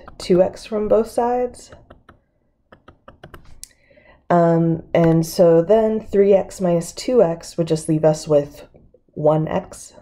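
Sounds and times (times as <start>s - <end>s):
stylus tapping on tablet screen: 0.0s - 3.6s.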